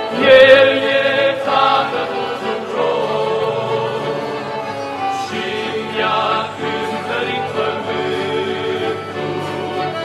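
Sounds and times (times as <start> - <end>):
accordions playing: 0.0 - 10.0
male vocal group singing: 0.0 - 10.0.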